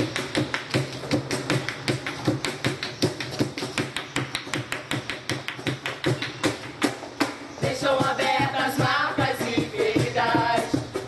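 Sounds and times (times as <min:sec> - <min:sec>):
cajon percussion: 0:00.0 - 0:11.0.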